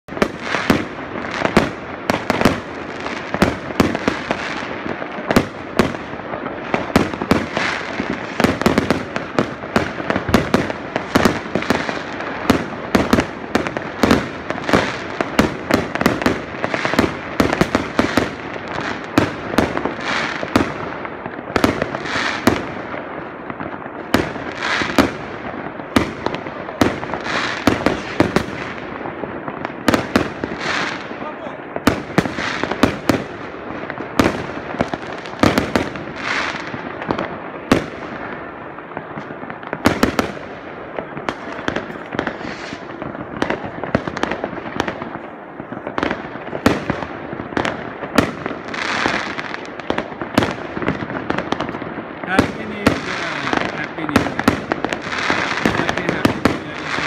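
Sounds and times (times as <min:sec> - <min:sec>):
fireworks bangs and crackling: 0:00.0 - 0:57.0.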